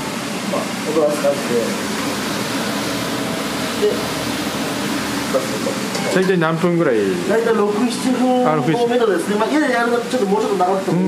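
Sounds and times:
water at rolling boil: 0:00.0 - 0:11.0
gas burners rushing: 0:00.2 - 0:08.3.

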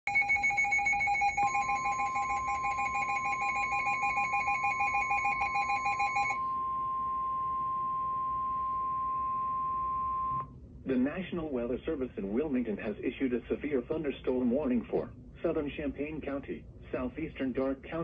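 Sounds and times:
steady warning tone: 0:00.1 - 0:10.5
two-tone warbling alarm: 0:00.1 - 0:10.5.

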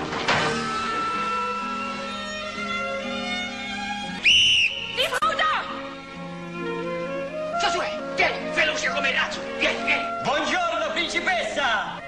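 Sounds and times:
orchestral strings: 0:04.8 - 0:12.0.

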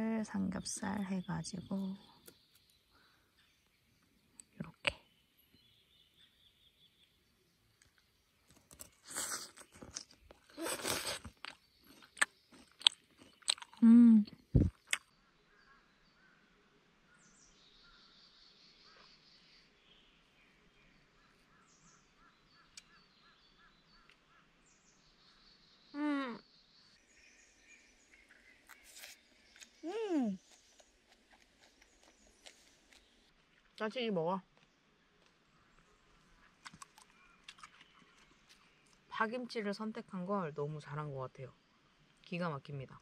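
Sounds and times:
faint birdsong: 0:00.0 - 0:43.0
person chewing crunchy food: 0:07.8 - 0:15.1, 0:28.2 - 0:33.4, 0:36.3 - 0:39.0
person humming mm: 0:13.8 - 0:14.7, 0:26.0 - 0:26.4, 0:29.8 - 0:30.4.

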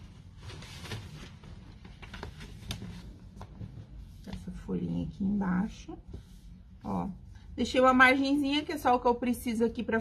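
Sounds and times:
paper rustling: 0:00.0 - 0:04.6.

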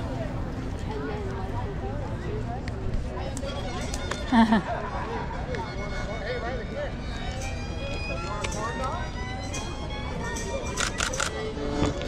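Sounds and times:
voices: 0:00.0 - 0:12.0
camera handling scraping: 0:10.8 - 0:12.0.

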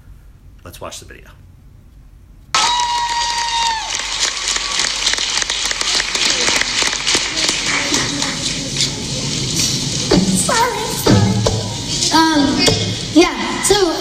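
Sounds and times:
high held woo shout: 0:02.5 - 0:04.8
audience applauding and cheering: 0:02.5 - 0:10.4.

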